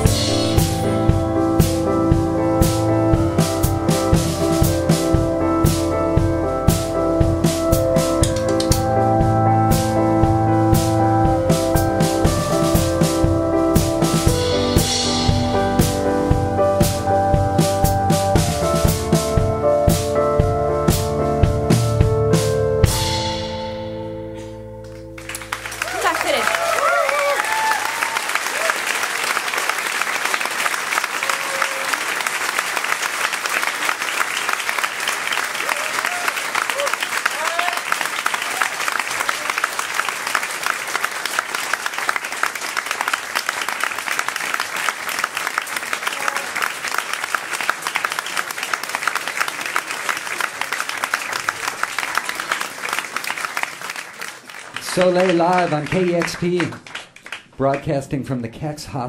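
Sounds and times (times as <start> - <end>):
audience applauding: 24.8 - 57.9
whoops and cheers: 25.8 - 29.2, 31.1 - 32.1, 35.6 - 39.6.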